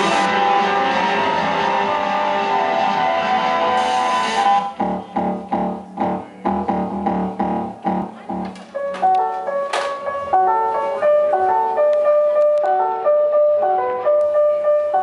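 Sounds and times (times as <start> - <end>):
distorted synthesizer wash: 0.0 - 8.5
pulsing synth chord stabs: 0.0 - 8.5.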